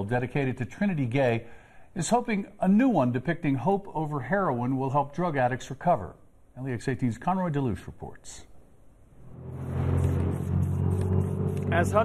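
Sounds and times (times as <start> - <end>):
vehicle engine hum: 9.2 - 12.0.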